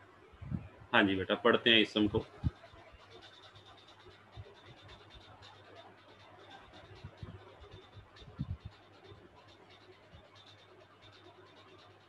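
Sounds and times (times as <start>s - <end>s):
soft low thumps: 8.2s - 8.7s.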